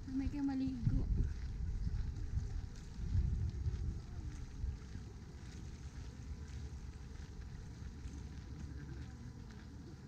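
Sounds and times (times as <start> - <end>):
wind buffeting microphone: 0.0 - 9.1.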